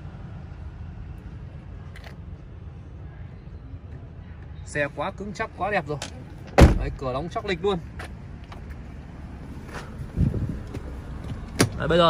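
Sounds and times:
wind rumble: 0:10.0 - 0:11.5.

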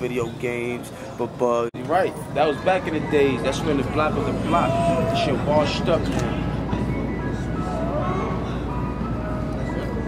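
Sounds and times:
ice cream truck chime tune: 0:06.4 - 0:10.0.

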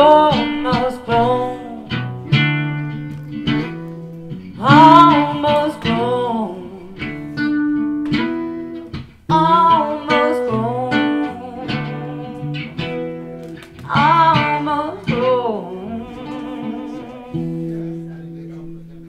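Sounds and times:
woman singing: 0:00.0 - 0:02.4, 0:04.5 - 0:07.5, 0:09.3 - 0:17.8
acoustic guitar: 0:00.0 - 0:19.0.

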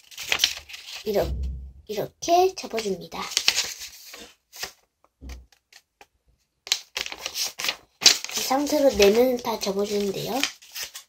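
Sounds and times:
paper folding and crackling: 0:00.0 - 0:01.2, 0:02.6 - 0:04.9, 0:05.5 - 0:11.0.

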